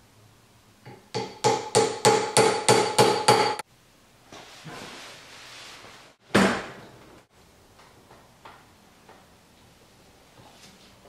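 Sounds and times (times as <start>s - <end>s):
hammer striking metal: 0.9s - 3.6s.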